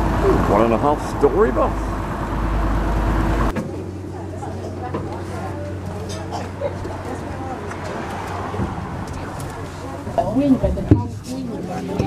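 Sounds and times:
coach engine rumbling: 0.0s - 12.0s
faint voices: 3.6s - 12.0s.

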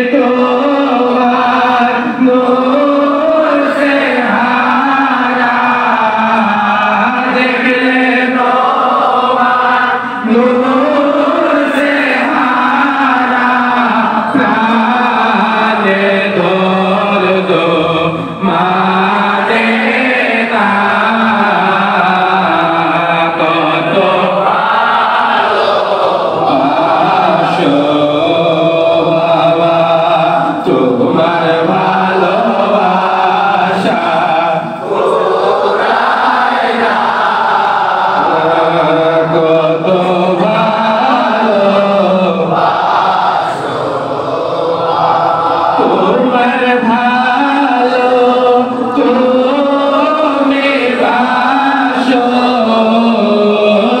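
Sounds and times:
men chanting devotional song: 0.0s - 54.0s.

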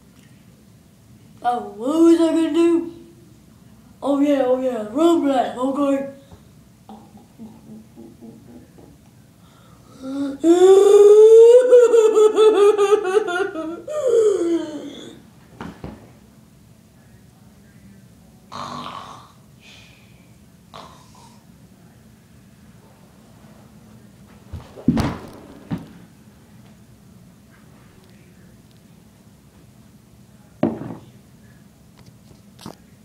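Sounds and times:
low room hum: 0.0s - 33.0s
boy crying out with warbling laugh: 10.2s - 15.2s
dull thumps: 24.5s - 26.0s.

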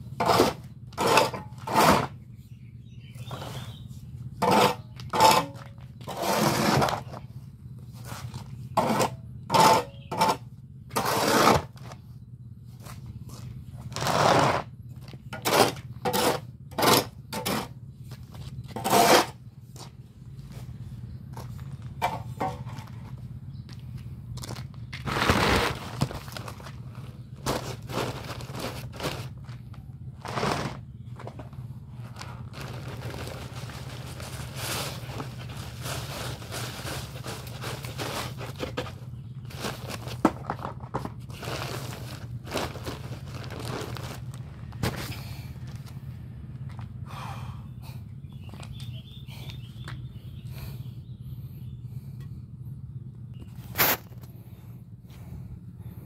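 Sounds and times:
scraping and crunching cement: 0.0s - 2.3s, 3.2s - 7.3s, 7.9s - 12.1s, 12.8s - 20.0s, 24.4s - 46.0s
steady low hum: 0.0s - 56.0s
heavy crunch: 12.8s - 46.9s.

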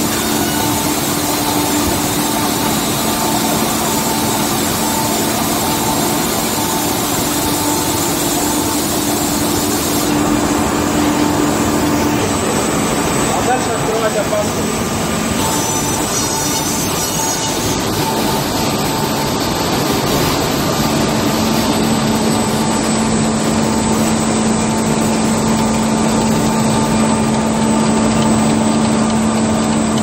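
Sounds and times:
low machine hum: 0.0s - 30.0s
machine mechanical clatter: 15.4s - 30.0s.

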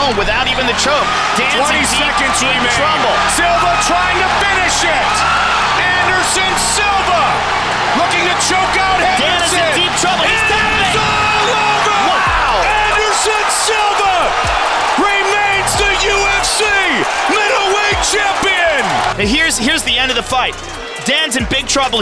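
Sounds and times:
background music with bass line: 0.0s - 22.0s
crowd yelling and cheering: 0.0s - 22.0s.

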